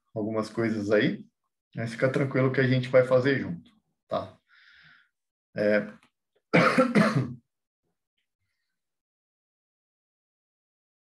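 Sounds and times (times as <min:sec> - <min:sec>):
man clearing his throat: 0:06.6 - 0:07.4.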